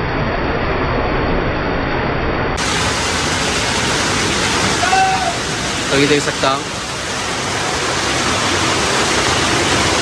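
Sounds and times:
heavy hail falling: 0:02.6 - 0:10.0.

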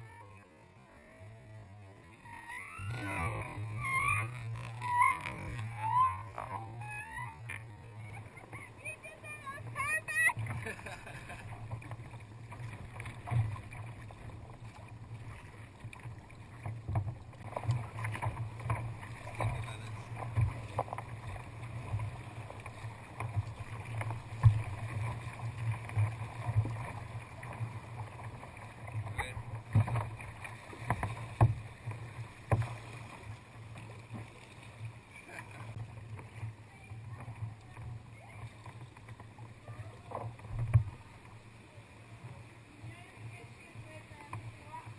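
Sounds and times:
low rumble of water: 0:00.0 - 0:44.9
paddle splashing water: 0:00.0 - 0:44.9
water slapping against hull: 0:02.4 - 0:44.9.

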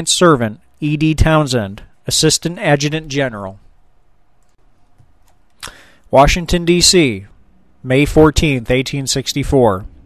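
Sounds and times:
person speaking: 0:00.0 - 0:04.0, 0:04.8 - 0:10.0
faint room hiss: 0:00.0 - 0:10.0
short breathy burst: 0:05.6 - 0:06.1.

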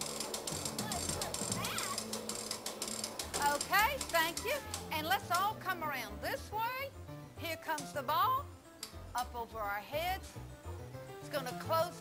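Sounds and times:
ball-lift mechanism clicking: 0:00.0 - 0:05.6.

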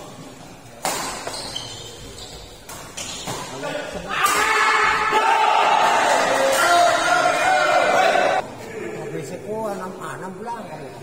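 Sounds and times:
crowd shouting and cheering: 0:04.1 - 0:08.4.

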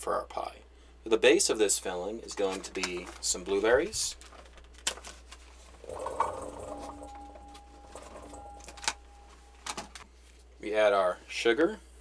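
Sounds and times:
metal bowl ringing faintly: 0:05.8 - 0:09.7.

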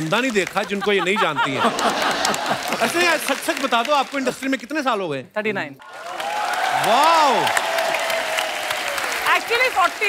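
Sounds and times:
audience applauding: 0:00.0 - 0:04.6, 0:05.8 - 0:10.0.

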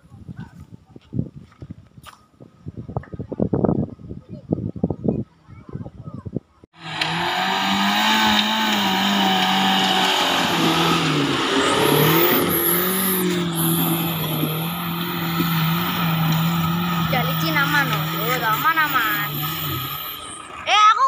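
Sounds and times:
car engine revving hard: 0:06.8 - 0:20.6.

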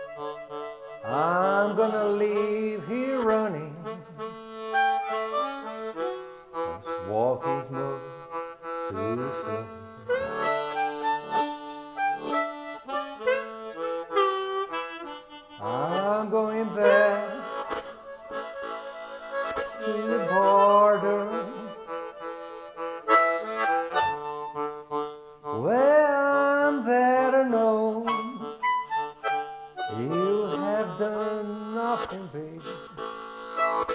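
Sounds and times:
blues harmonica playing: 0:00.0 - 0:33.9.

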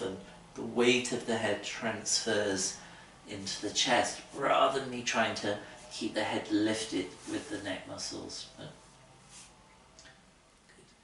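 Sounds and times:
faint rustle: 0:08.8 - 0:09.8.

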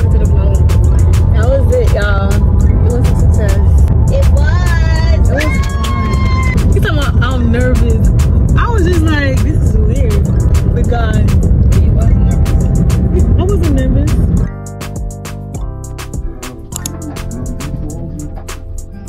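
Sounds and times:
quieter guitar music: 0:00.0 - 0:19.0
song with heavy bass beat: 0:00.0 - 0:19.0.

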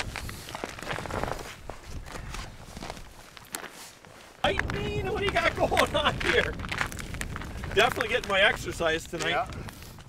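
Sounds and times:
footsteps crunching on snow: 0:00.0 - 0:10.0.

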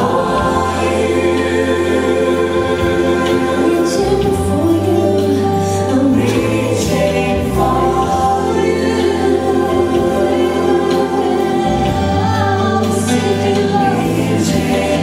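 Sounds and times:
choir singing gospel: 0:00.0 - 0:15.0
low bass accompaniment: 0:00.0 - 0:15.0.

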